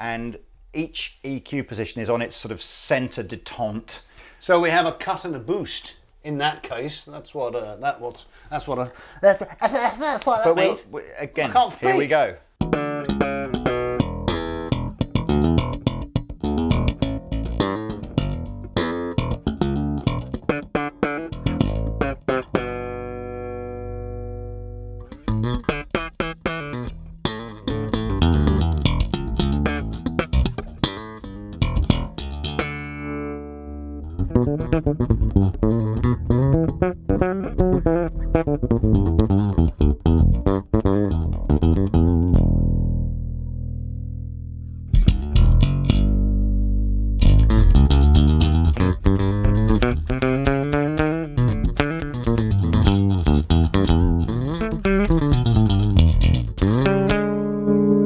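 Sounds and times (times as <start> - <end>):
electric bass riff: 12.6 - 58.0.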